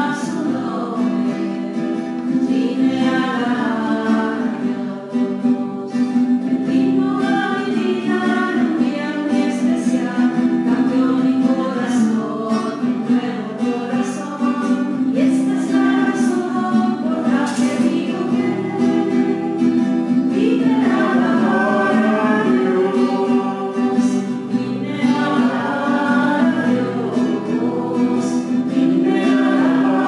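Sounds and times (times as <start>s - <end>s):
guitar accompaniment: 0.0s - 30.0s
voices singing a hymn: 0.0s - 30.0s.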